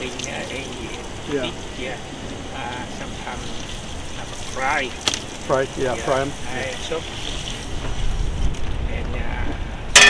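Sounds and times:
wind buffeting microphone: 0.0 - 10.0.

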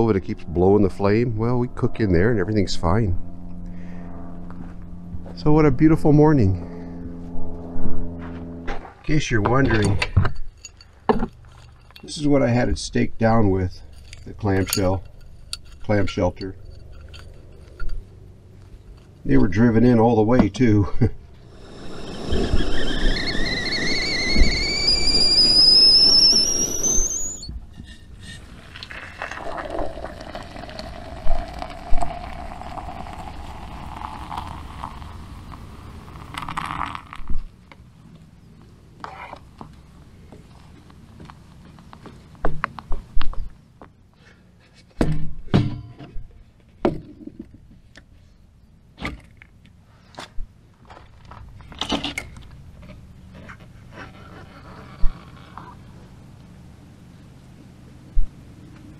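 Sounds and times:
kettle whistling: 21.5 - 37.2
water pouring into steel mug: 28.5 - 37.2.

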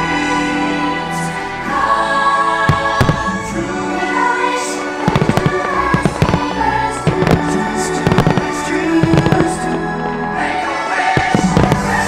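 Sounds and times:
show music: 0.0 - 12.0
fireworks bursting and crackling: 2.6 - 10.3, 11.1 - 12.0.

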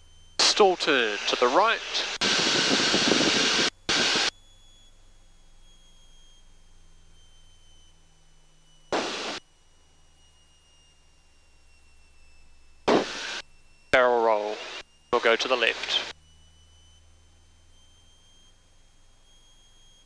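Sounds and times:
low hum: 0.0 - 4.4, 8.9 - 9.4, 12.4 - 16.1
thin whine falling in pitch: 8.7 - 9.5
loud rushing noise bursts: 9.0 - 9.4, 12.9 - 13.4.

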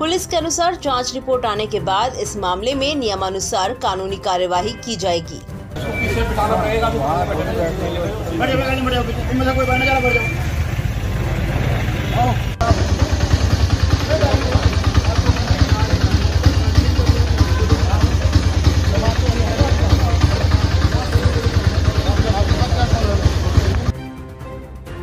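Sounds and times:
men talking: 5.8 - 10.5, 11.7 - 23.9
small engine idling: 7.6 - 23.9.

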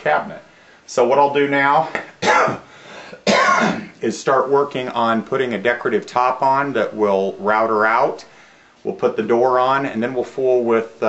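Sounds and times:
man coughing: 2.2 - 4.0.

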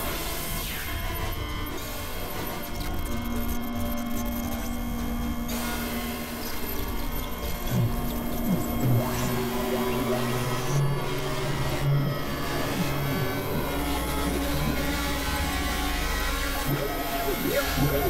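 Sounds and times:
synthesizer drone music: 5.3 - 18.0.

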